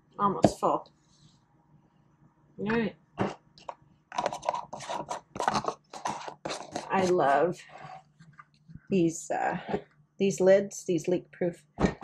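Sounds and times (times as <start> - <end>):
plastic lid scraping on glass jar: 3.2 - 8.1.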